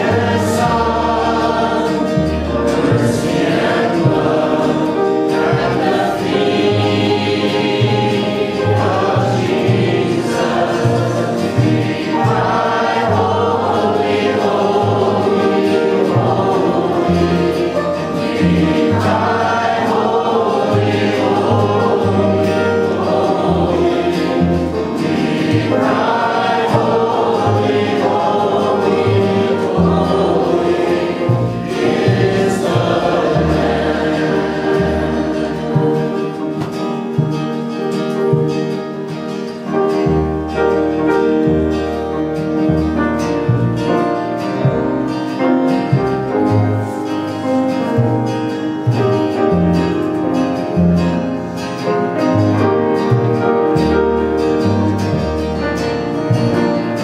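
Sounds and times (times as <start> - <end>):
acoustic guitar: 0.0 - 57.0
choir singing gospel song: 0.0 - 57.0
upright bass plucking low notes: 26.7 - 39.0, 39.8 - 57.0.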